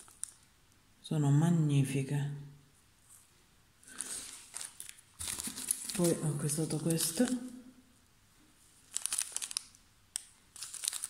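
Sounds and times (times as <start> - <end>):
plastic bag crinkling: 0.0 - 0.5, 3.9 - 7.6, 8.8 - 11.0.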